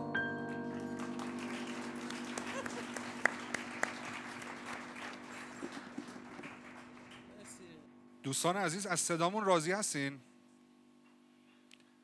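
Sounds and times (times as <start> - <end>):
audience applauding: 0.6 - 7.8.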